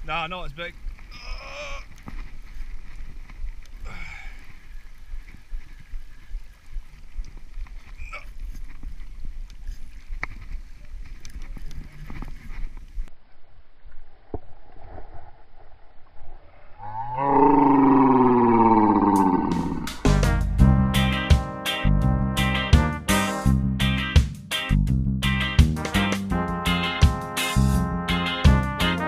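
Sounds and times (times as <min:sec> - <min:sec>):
wind rumbling on microphone: 0:00.0 - 0:20.0.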